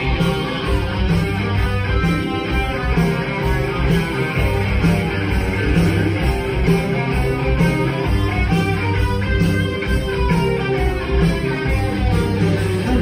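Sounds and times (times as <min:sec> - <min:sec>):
electric guitars: 0:00.0 - 0:13.0
live rock band: 0:00.0 - 0:13.0.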